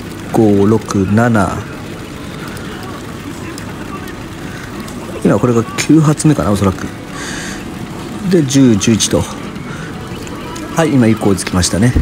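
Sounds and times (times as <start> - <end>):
roar of pachinko machines: 0.0 - 12.0
faint clicks: 1.6 - 5.2, 9.4 - 10.8.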